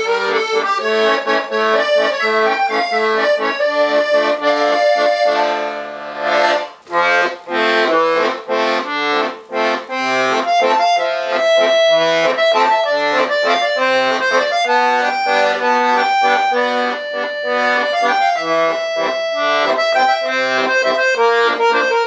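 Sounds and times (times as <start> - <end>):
accordion bass notes and chords: 0.0 - 22.0
accordion melody: 0.0 - 22.0.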